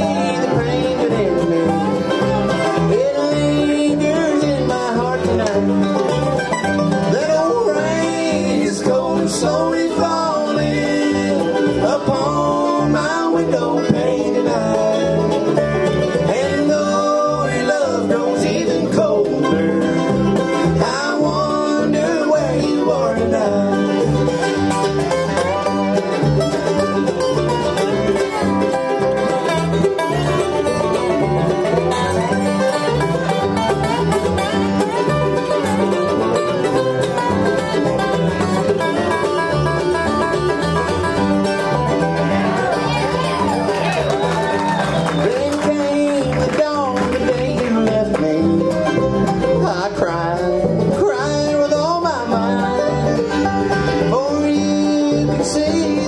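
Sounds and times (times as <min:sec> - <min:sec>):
bluegrass band playing: 0:00.0 - 0:56.0.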